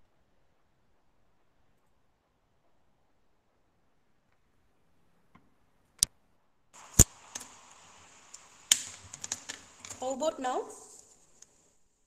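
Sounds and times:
steady microphone hiss: 0:00.0 - 0:12.0.

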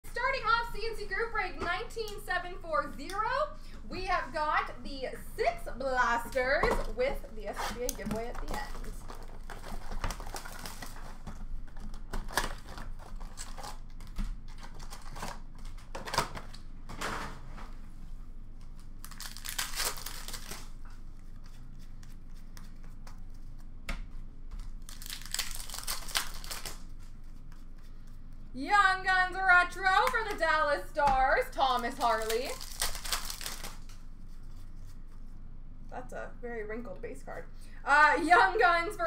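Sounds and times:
card pack wrappers tearing: 0:07.7 - 0:16.6, 0:18.8 - 0:22.2, 0:24.6 - 0:27.0, 0:31.6 - 0:34.0.

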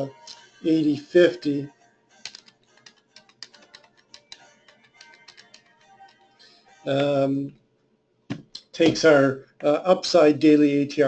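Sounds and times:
keyboard typing: 0:02.2 - 0:06.3.

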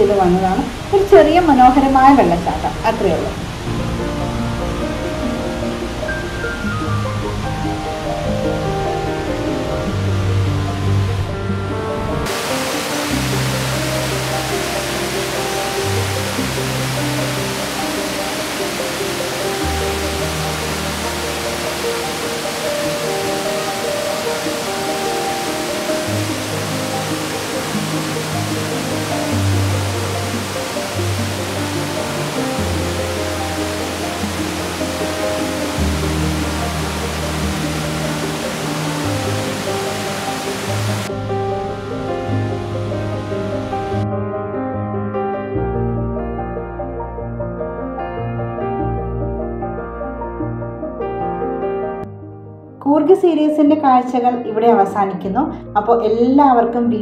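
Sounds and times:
waterfall rushing: 0:00.0 - 0:44.0.

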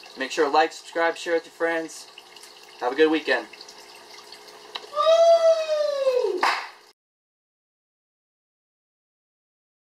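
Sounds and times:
long high-pitched vocal call: 0:04.9 - 0:06.4.

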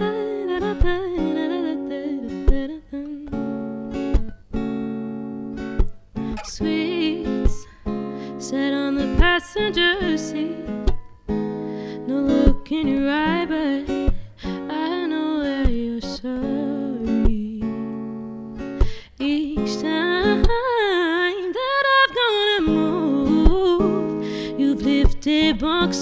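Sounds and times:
woman singing: 0:00.0 - 0:03.6, 0:06.4 - 0:11.0, 0:11.9 - 0:18.0, 0:19.2 - 0:26.0
strummed acoustic guitar: 0:00.0 - 0:26.0.

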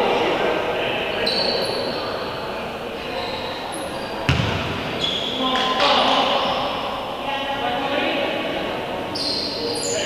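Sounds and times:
basketball bouncing on court: 0:04.3 - 0:05.7.

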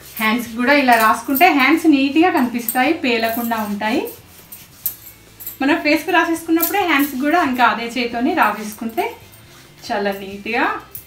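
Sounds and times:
woman speaking: 0:00.1 - 0:04.2, 0:05.6 - 0:11.0.

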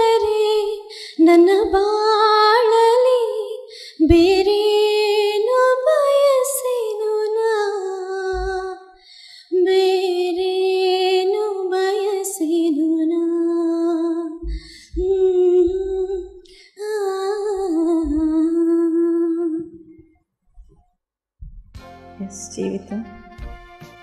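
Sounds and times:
woman singing into a microphone: 0:00.0 - 0:19.8.

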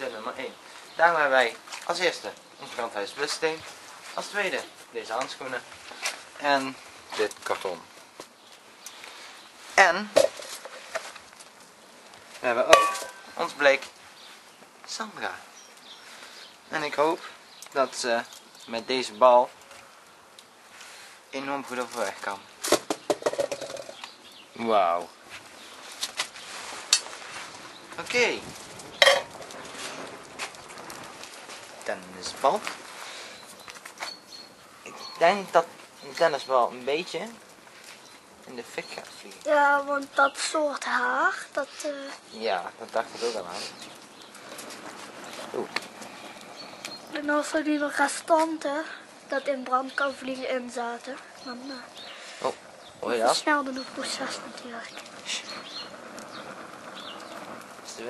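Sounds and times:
wood fire crackling: 0:00.0 - 0:58.0
metal pot clanking: 0:12.7 - 0:13.3, 0:29.0 - 0:29.4
faint high chirps: 0:33.3 - 0:36.8.

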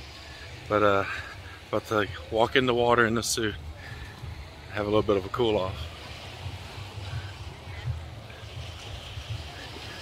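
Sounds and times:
surf on beach: 0:00.0 - 0:10.0
wind buffeting microphone: 0:02.1 - 0:10.0.

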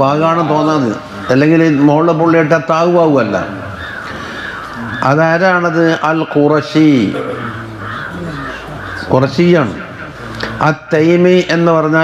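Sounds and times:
crows cawing: 0:00.0 - 0:10.8.

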